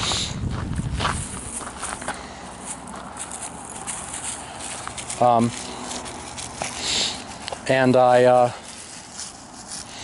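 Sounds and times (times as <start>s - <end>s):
footsteps walking: 0.0s - 10.0s
outdoor background noise: 0.0s - 10.0s.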